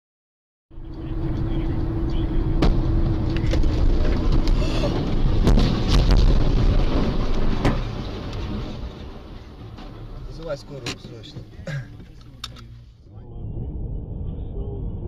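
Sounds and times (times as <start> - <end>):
road noise inside a car: 0.8 - 15.0
truck crashing with bangs: 2.5 - 11.5.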